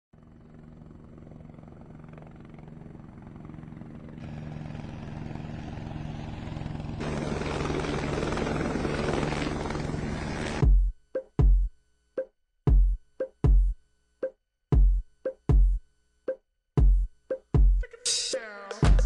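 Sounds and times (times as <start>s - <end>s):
helicopter rotor chopping: 0.2s - 10.7s.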